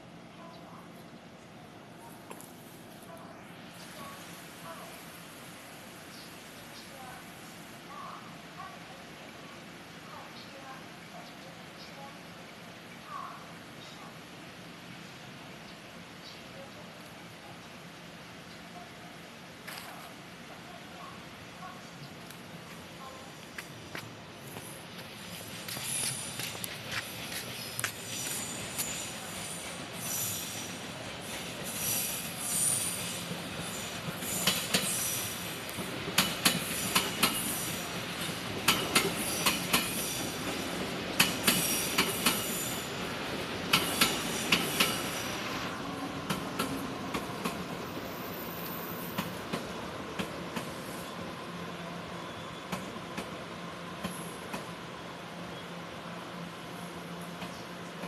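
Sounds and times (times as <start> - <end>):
train hum: 0.0 - 58.0
train wheels clacking over rail joints: 33.0 - 42.6, 43.7 - 45.1.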